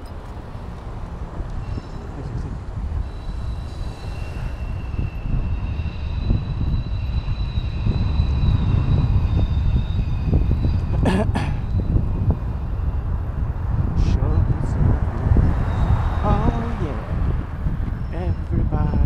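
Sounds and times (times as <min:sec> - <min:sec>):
road rumble: 0:00.0 - 0:19.0
wind buffeting microphone: 0:00.0 - 0:19.0
faint high whine: 0:01.5 - 0:13.4.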